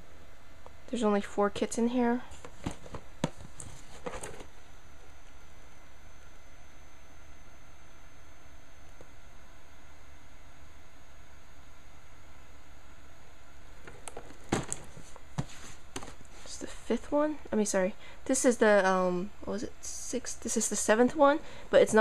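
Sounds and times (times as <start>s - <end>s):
cardboard boxes rustling and knocking: 2.4s - 4.5s, 13.9s - 16.3s.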